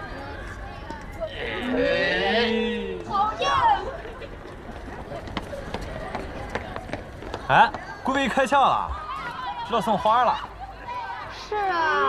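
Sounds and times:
low outdoor background: 0.0 - 12.0.

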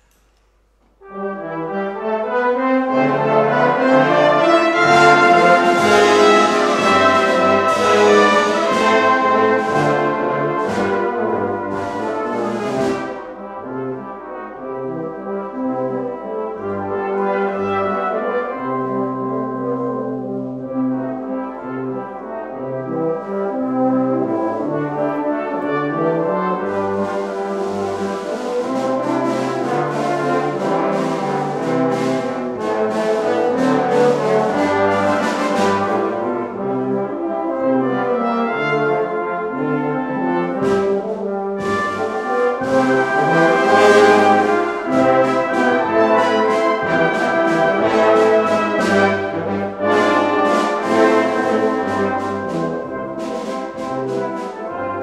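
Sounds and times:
brass band playing: 1.0 - 55.0.

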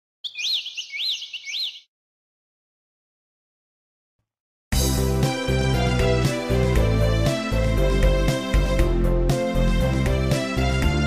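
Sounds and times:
bird chirping whistled notes: 0.2 - 1.9.

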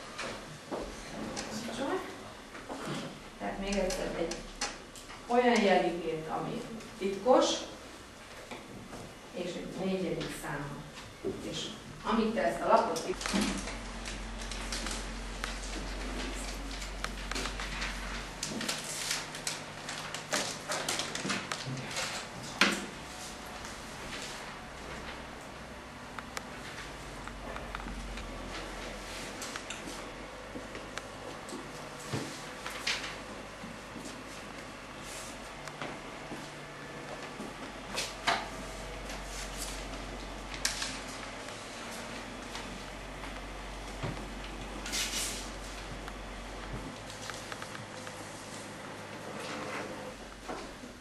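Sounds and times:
low steady hum: 0.0 - 51.0
paper rustling: 13.2 - 22.6, 32.1 - 33.3.

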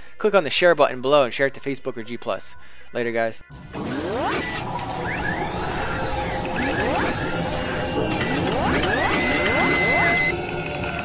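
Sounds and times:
quiet background music: 0.0 - 11.0
rising mechanical whirs: 3.6 - 11.0
bursts of clicking: 3.8 - 10.4
high electronic tone: 3.8 - 10.4.

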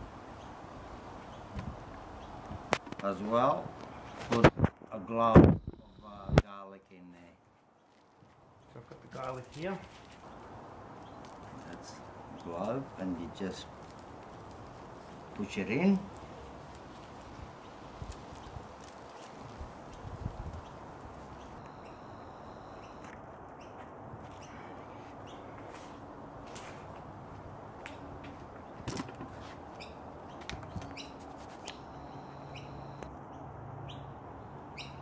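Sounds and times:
outdoor background noise: 0.0 - 35.0.

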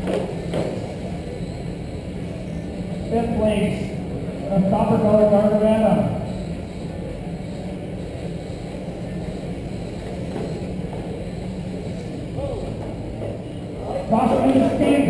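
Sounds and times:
faint wavering whine: 0.0 - 15.0
radio-controlled cars racing: 13.8 - 15.0.

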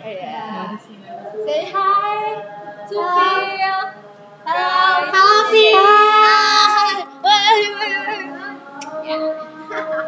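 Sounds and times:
girls singing loudly: 1.2 - 10.0.

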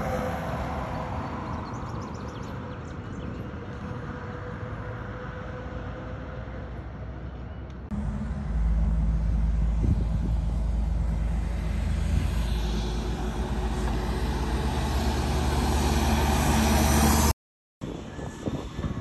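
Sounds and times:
road noise hiss: 7.9 - 17.3
truck diesel engine droning: 7.9 - 19.0.

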